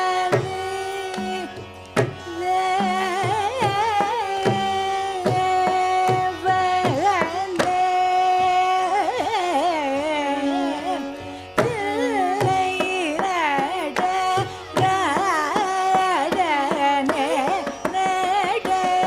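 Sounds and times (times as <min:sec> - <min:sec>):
woman singing ornamented notes: 0:00.0 - 0:19.0.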